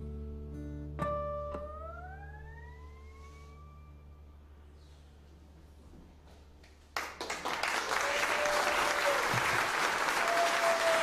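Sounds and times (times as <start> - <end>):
acoustic guitar note gliding upward: 1.0 - 4.6.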